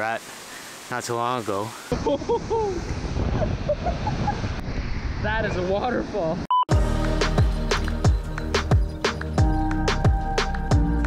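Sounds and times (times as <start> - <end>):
waterfall rushing: 0.0 - 2.0
wind buffeting microphone: 2.0 - 6.4.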